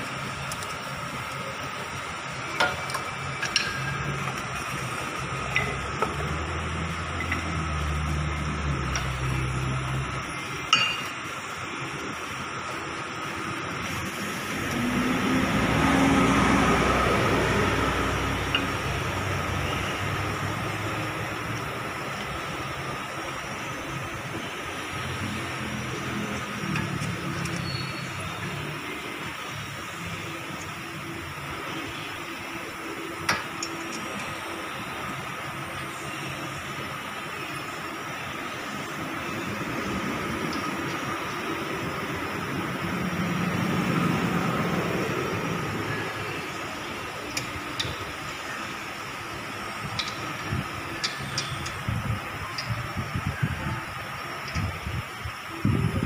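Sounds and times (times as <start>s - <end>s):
steady background hum: 0.0s - 56.0s
vehicles passing by: 0.8s - 56.0s.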